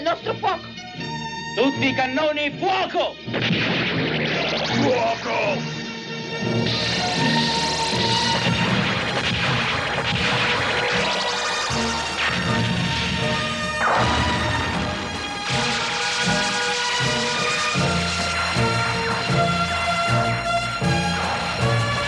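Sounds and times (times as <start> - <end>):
dramatic background music: 0.0 - 22.0
crashing blasts: 3.3 - 5.2, 6.6 - 22.0.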